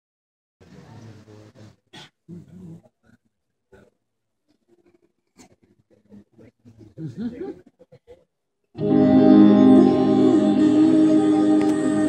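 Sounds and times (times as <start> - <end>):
stage and room noises: 8.7 - 12.0.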